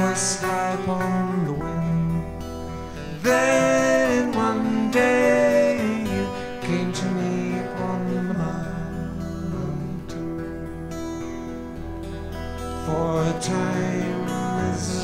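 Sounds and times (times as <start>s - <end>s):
person singing: 0.0s - 10.6s, 12.7s - 15.0s
acoustic guitars playing folk: 0.0s - 15.0s.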